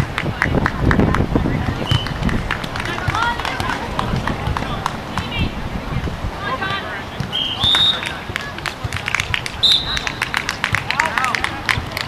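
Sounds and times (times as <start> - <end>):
players calling out: 6.4 - 12.0.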